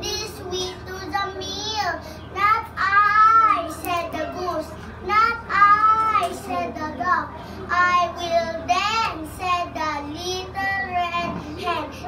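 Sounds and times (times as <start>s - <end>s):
child chanting in singsong: 0.0s - 12.0s.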